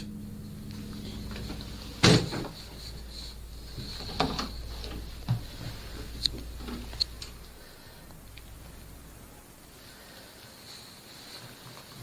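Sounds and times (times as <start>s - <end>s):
steady low hum: 0.0s - 12.0s
door opening: 1.1s - 2.8s.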